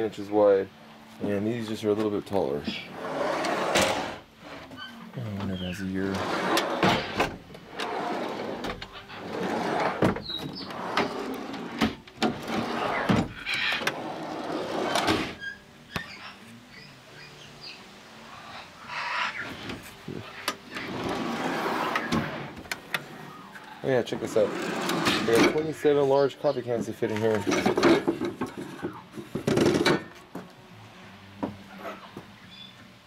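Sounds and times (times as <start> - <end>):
wooden drawer sliding: 2.7 - 4.8, 6.0 - 15.4, 20.7 - 23.3, 24.2 - 25.6.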